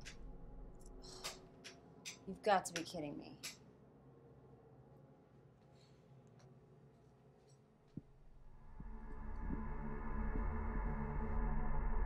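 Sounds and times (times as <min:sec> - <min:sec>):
suspense film score drone: 0:08.2 - 0:12.0.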